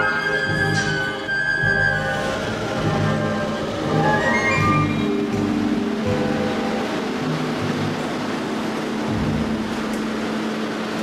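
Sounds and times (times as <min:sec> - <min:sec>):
metro train rushing: 0:00.0 - 0:11.0.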